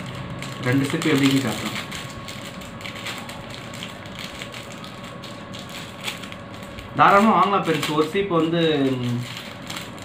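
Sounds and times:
wooden comb clicking and crackling: 0.0s - 10.0s.

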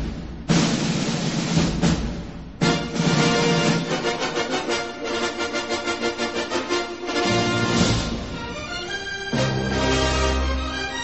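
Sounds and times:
heavy drum hit: 0.0s - 4.2s
drums rolling: 0.0s - 11.0s
orchestral fanfare: 2.6s - 11.0s.

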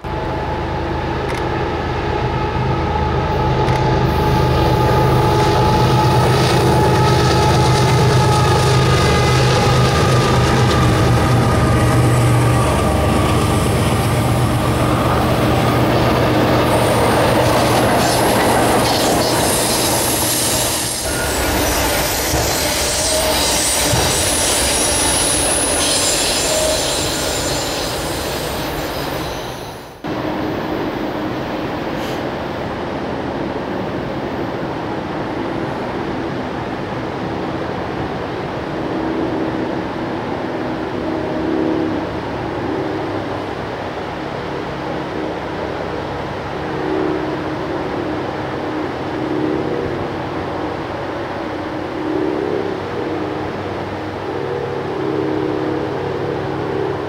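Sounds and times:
diesel locomotive engines droning: 0.0s - 57.0s
train wheel rumble: 0.0s - 57.0s
high-pitched wheel squeal: 16.9s - 30.0s.

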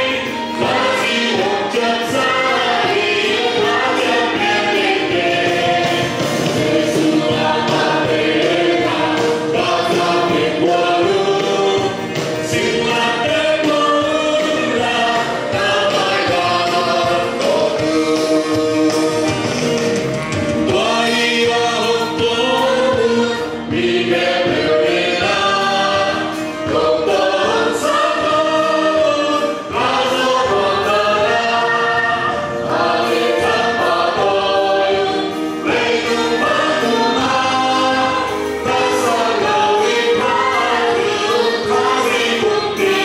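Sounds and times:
congregation singing: 0.0s - 43.0s
live band with guitars: 0.0s - 43.0s.

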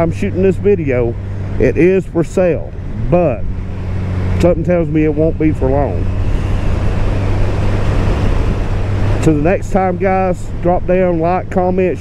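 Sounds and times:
motorcycle engine cruising: 0.0s - 12.0s
wind rushing on microphone: 2.8s - 12.0s.

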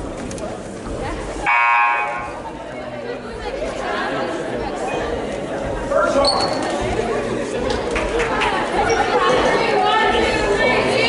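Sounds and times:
crowd chatter: 0.0s - 11.0s
scoreboard buzzer: 1.5s - 2.4s.

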